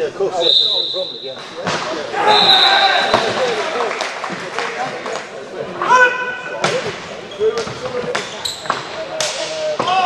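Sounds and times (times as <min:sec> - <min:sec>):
players calling out: 0:00.3 - 0:04.1
hockey sticks clacking on ball: 0:01.3 - 0:02.0, 0:06.6 - 0:10.0.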